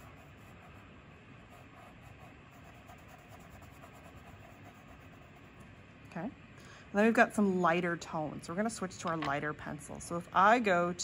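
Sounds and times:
pencil scratching on paper: 0:00.0 - 0:00.9, 0:01.5 - 0:05.6.

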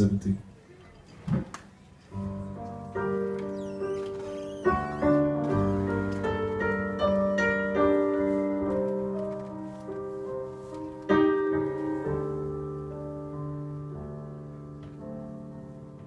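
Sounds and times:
piano chords: 0:02.0 - 0:16.0.

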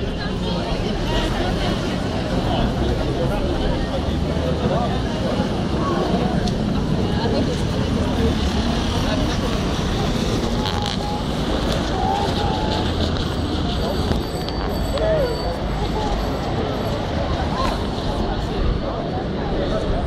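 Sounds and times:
chatter of passers-by: 0:00.0 - 0:20.0
road traffic: 0:00.0 - 0:20.0.

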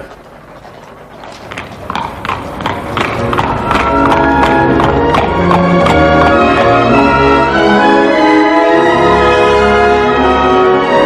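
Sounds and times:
horse hooves clipping: 0:00.0 - 0:08.0
music: 0:02.6 - 0:11.0.

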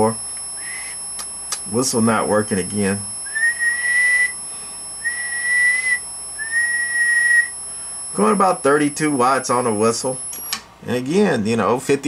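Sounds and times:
person whistling steady notes: 0:00.6 - 0:01.0, 0:03.2 - 0:04.4, 0:05.0 - 0:07.6.

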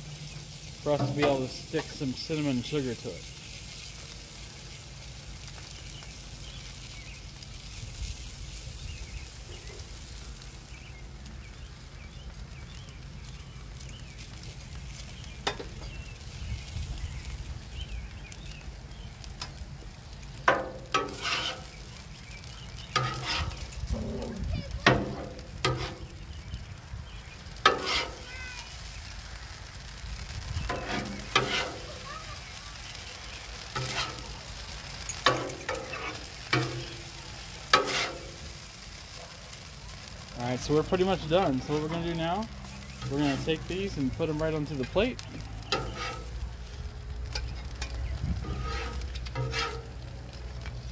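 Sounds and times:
food sizzling on a griddle: 0:00.0 - 0:50.9
metal spatula scraping griddle: 0:00.4 - 0:02.8, 0:20.5 - 0:21.8, 0:22.8 - 0:26.2, 0:27.6 - 0:28.3, 0:30.6 - 0:32.0, 0:33.6 - 0:38.8, 0:41.0 - 0:42.0, 0:42.7 - 0:46.4, 0:47.3 - 0:50.1
low rumble: 0:23.5 - 0:27.3.

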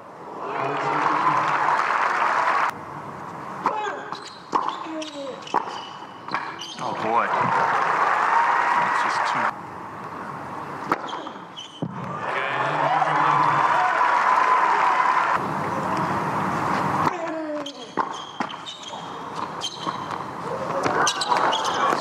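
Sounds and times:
tennis ball bouncing: 0:04.1 - 0:06.8
crowd voices: 0:20.2 - 0:22.0.

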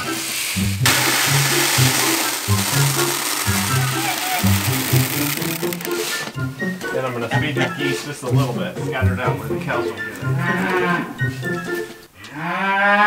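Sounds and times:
background music: 0:00.0 - 0:12.2
grain pouring into plastic bucket: 0:00.1 - 0:06.2.

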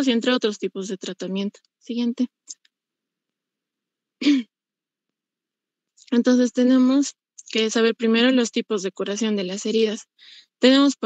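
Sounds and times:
person clearing throat: 0:04.2 - 0:04.5.

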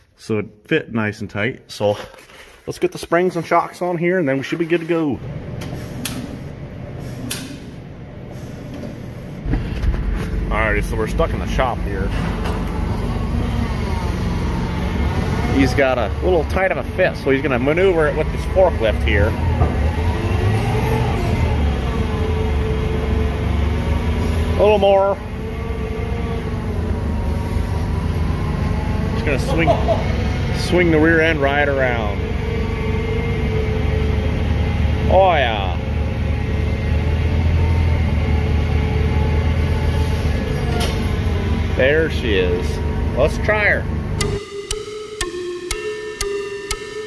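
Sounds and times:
vehicle engine rumbling: 0:04.0 - 0:44.2.

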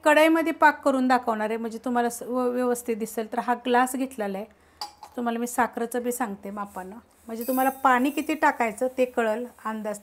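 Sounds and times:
woman talking: 0:05.2 - 0:10.0
metal tumbler clinking in metal pan: 0:07.4 - 0:08.5.

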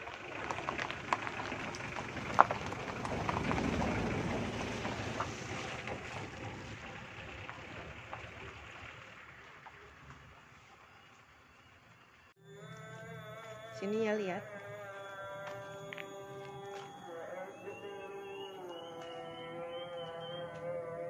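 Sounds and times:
tyres crunching on gravel: 0:00.0 - 0:13.8, 0:14.4 - 0:20.8.

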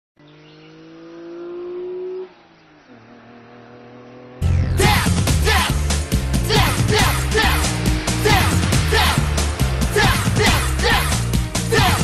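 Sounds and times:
car engine accelerating: 0:00.2 - 0:12.0.

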